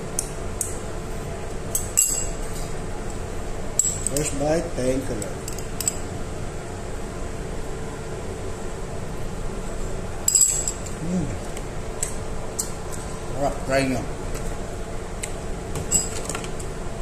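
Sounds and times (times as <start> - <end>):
steady background hum: 0.0 - 17.0
person humming: 11.0 - 11.4.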